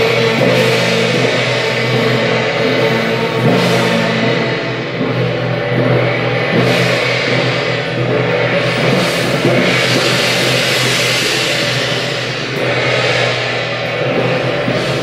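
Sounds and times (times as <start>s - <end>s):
drums and cymbals crashing: 0.0s - 15.0s.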